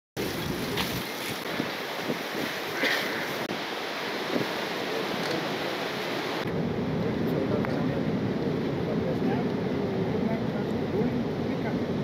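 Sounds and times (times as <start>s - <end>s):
wind buffeting microphone: 0.2s - 12.0s.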